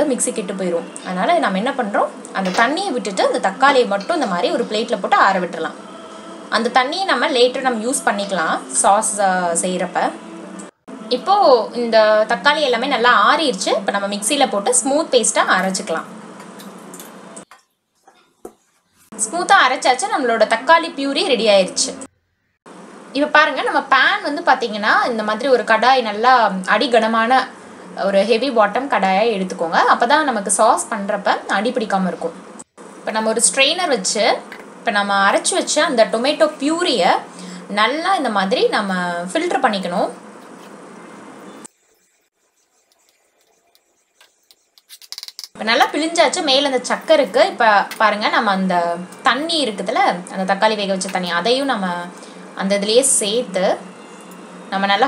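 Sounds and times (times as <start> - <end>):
steel kitchenware knock: 2.4 - 2.8.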